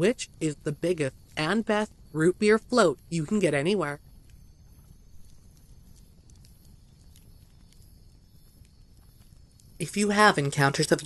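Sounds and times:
steady low rumble: 0:00.0 - 0:11.0
soft clicks and ticks: 0:01.1 - 0:11.0.

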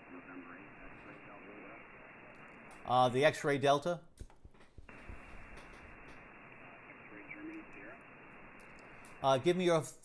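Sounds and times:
faint distant radio voice: 0:00.0 - 0:03.3, 0:05.0 - 0:08.4
radio band hiss: 0:00.0 - 0:04.0, 0:04.9 - 0:10.0.

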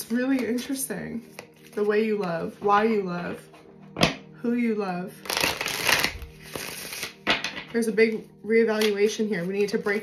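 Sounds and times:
cards being shuffled: 0:05.2 - 0:07.7.

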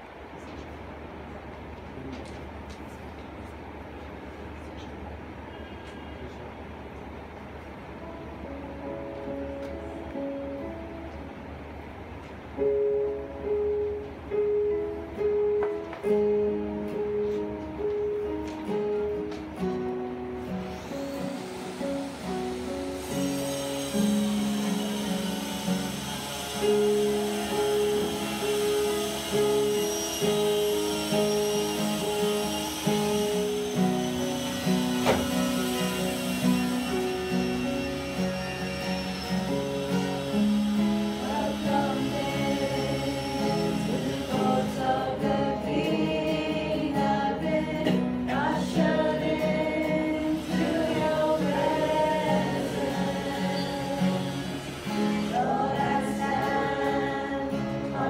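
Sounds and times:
keyboard and acoustic guitar music: 0:12.1 - 0:58.0
faint brief hissing: 0:20.5 - 0:44.8.

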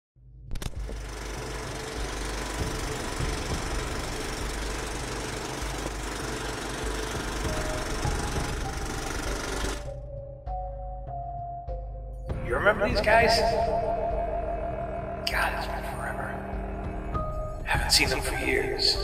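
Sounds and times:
film projector clatter: 0:00.6 - 0:10.0.

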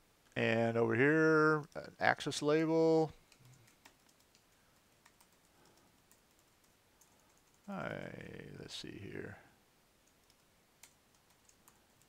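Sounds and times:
typing on computer keyboard: 0:03.2 - 0:07.7, 0:10.0 - 0:12.0.

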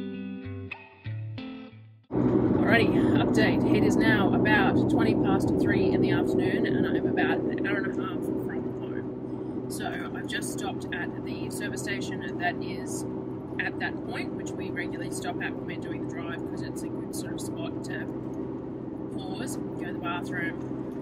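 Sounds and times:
car engine and tyres drone: 0:02.1 - 0:21.0
woman speaking: 0:02.6 - 0:09.0, 0:09.7 - 0:13.0, 0:13.6 - 0:18.1, 0:19.2 - 0:20.6.

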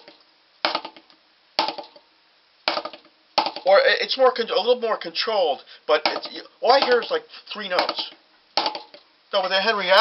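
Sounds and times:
drumstick hitting practice pad: 0:00.0 - 0:02.0, 0:02.7 - 0:03.7, 0:06.0 - 0:09.0.

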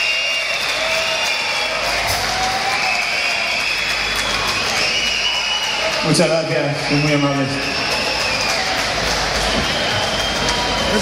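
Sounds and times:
concert crowd noise: 0:00.0 - 0:11.0
man's voice over loudspeaker: 0:06.0 - 0:07.7.

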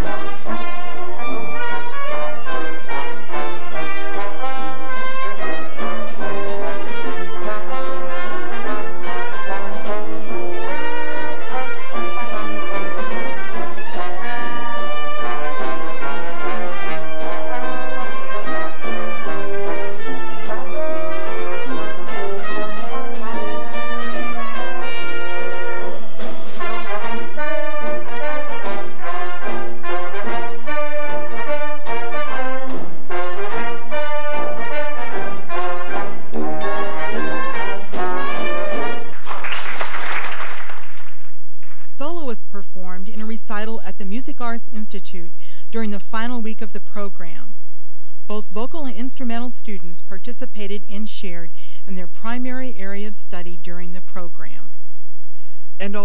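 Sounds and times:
dixieland jazz band playing: 0:00.0 - 0:41.2.

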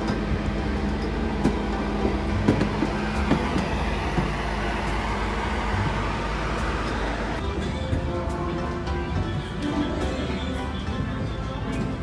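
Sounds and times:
low engine-like rumble: 0:00.0 - 0:07.6.

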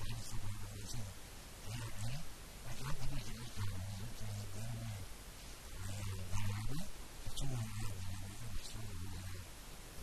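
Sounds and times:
man speaking into a microphone: 0:00.0 - 0:05.1, 0:05.8 - 0:09.5.

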